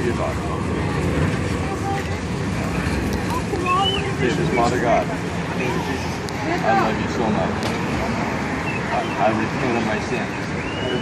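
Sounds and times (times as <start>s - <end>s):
faint voices: 0.0s - 11.0s
passing vehicles rumbling: 0.0s - 11.0s.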